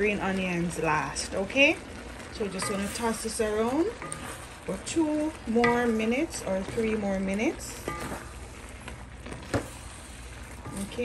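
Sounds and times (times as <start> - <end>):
food sizzling in a hot pan: 0.0 - 11.0.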